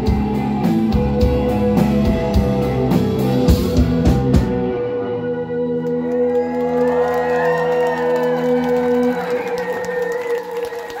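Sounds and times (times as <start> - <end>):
crowd whooping and cheering: 5.8 - 11.0.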